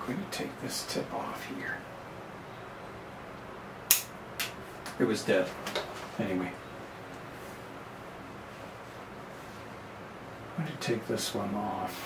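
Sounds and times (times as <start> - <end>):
pruning cutters snipping twig: 3.9 - 4.6.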